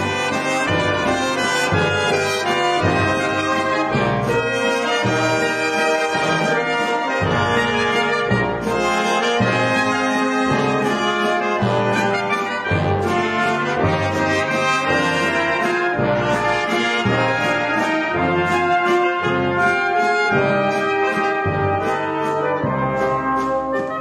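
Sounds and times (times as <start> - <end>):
brass band playing: 0.0 - 24.0.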